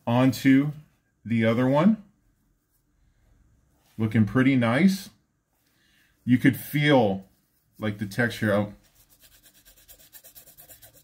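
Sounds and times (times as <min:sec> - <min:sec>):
fabric rustling in hands: 0:05.4 - 0:09.9.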